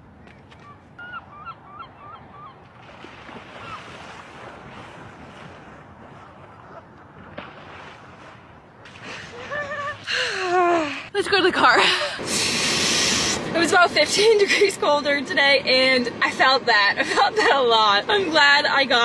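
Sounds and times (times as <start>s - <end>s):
low surf: 0.0s - 19.0s
person splashing in shallow water: 2.7s - 10.1s.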